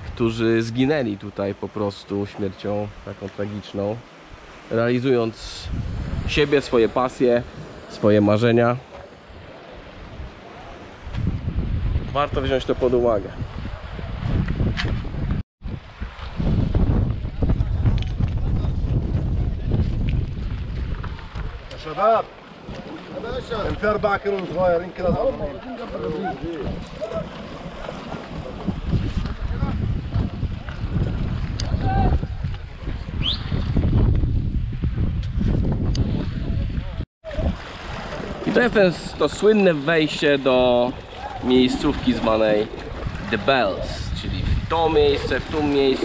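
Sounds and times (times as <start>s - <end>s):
wind buffeting microphone: 4.2s - 46.0s
short rising whistle: 33.2s - 33.5s.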